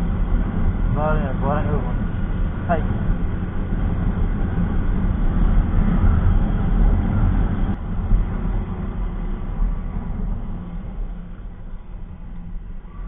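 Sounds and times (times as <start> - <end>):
wind rumbling over microphone: 0.0 - 13.0.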